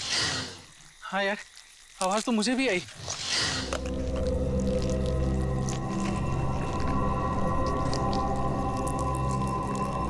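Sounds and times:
eerie drone of held tones: 3.7 - 10.0.

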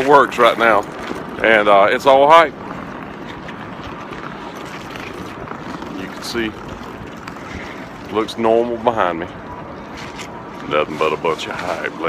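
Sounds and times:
city street background rush: 0.0 - 12.0.

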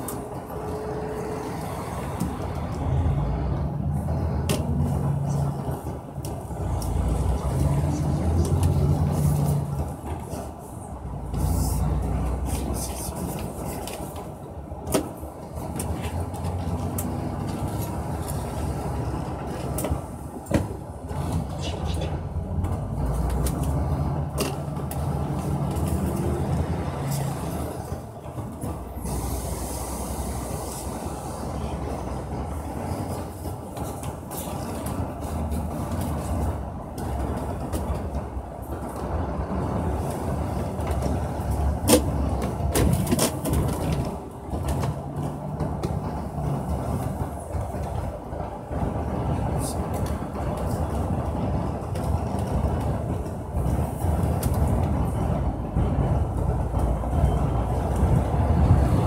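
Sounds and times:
vehicle engine and road rumble: 0.0 - 59.0.

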